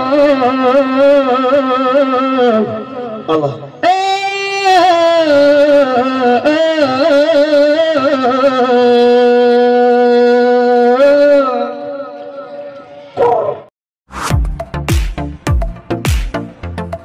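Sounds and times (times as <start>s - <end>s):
person singing unaccompanied: 0.0s - 11.9s.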